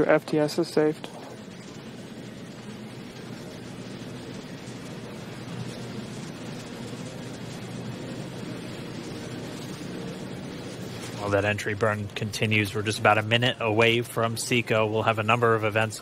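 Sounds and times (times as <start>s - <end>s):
faint low hum: 0.0s - 16.0s
steady rushing noise: 0.0s - 16.0s.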